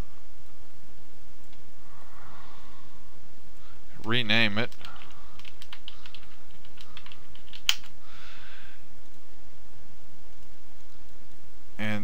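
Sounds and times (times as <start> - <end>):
keyboard key clicks: 4.7 - 7.9.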